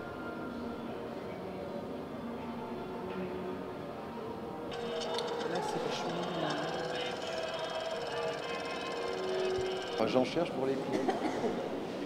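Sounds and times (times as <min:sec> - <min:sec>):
film projector clatter: 0:04.7 - 0:10.4
indistinct voices: 0:04.7 - 0:10.5.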